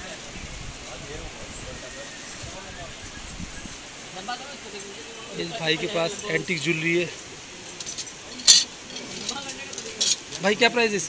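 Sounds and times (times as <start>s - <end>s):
metal bracelets clinking on glass: 7.7s - 10.4s.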